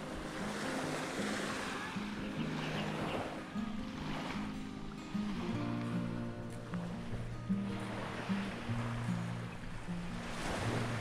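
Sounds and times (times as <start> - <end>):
small waves washing on sand: 0.0 - 11.0
soft background music: 0.0 - 11.0.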